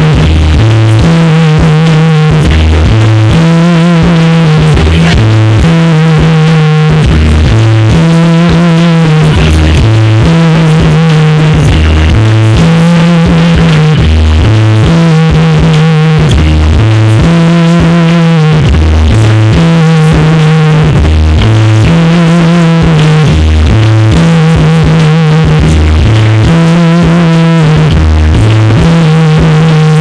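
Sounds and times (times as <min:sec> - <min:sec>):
heavy metal band playing: 0:00.0 - 0:30.0
rapped vocals: 0:00.0 - 0:30.0.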